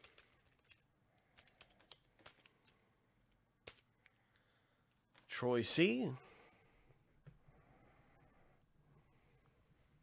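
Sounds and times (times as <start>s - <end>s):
faint keyboard clicks: 0.0s - 4.5s.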